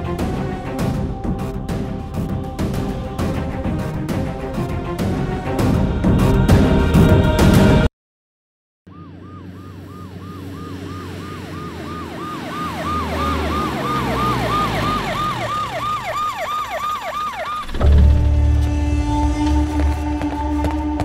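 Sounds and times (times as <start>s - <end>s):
low vehicle rumble: 8.9s - 21.0s
police siren wailing: 8.9s - 21.0s.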